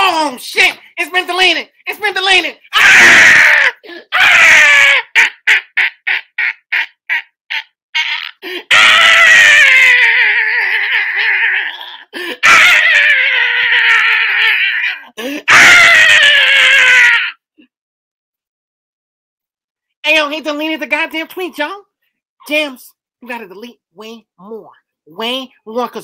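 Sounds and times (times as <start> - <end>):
man screaming and laughing: 2.7 - 17.4.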